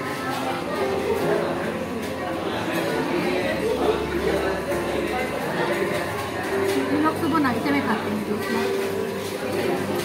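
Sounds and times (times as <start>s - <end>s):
background chatter of many voices: 0.0s - 10.0s.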